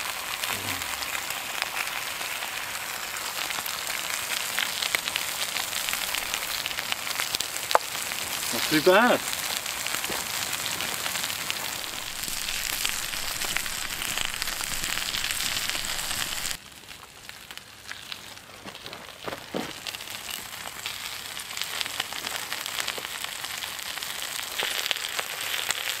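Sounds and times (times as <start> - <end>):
food sizzling on hot stone: 0.0 - 26.0.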